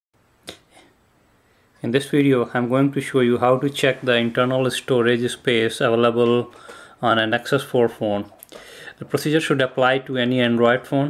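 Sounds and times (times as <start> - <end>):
man talking: 1.8 - 11.0.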